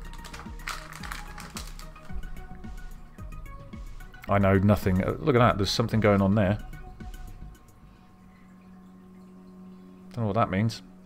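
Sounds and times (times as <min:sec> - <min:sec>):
foil wrapper rustling: 0:00.0 - 0:02.2
cards tapping and rustling: 0:00.0 - 0:02.3
background music with beat: 0:00.0 - 0:08.0.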